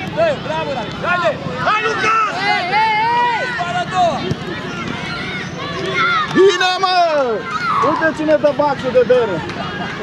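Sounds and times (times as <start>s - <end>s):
voices shouting: 0.0s - 10.0s
football being kicked: 4.2s - 4.5s.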